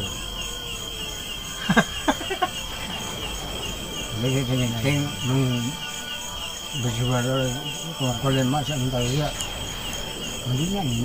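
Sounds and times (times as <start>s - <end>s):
crickets chirping: 0.0s - 11.0s
man talking: 4.1s - 5.9s, 6.7s - 9.4s, 10.4s - 11.0s.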